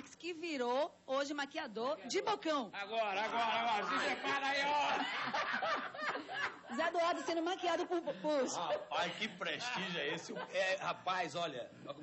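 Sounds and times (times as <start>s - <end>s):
people laughing: 3.3s - 10.8s
people talking: 6.7s - 12.0s.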